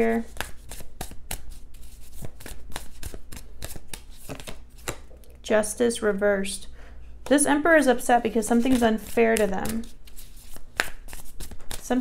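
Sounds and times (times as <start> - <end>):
cards being shuffled: 0.2 - 5.1, 8.4 - 12.0.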